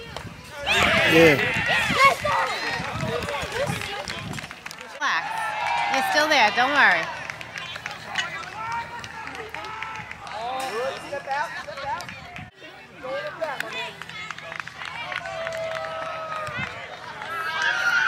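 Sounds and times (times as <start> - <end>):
people shouting and calling out: 0.0 - 4.4.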